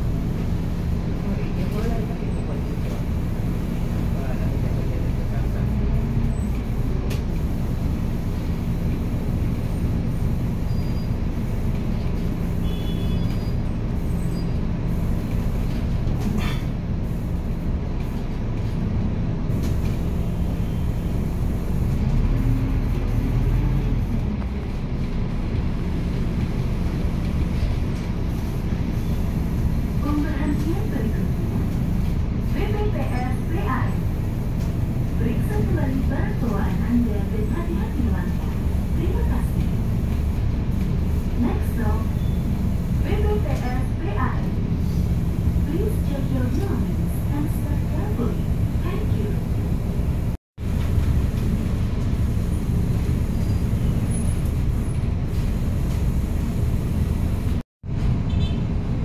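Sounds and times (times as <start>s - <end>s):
bus drivetrain and road noise: 0.0s - 59.0s.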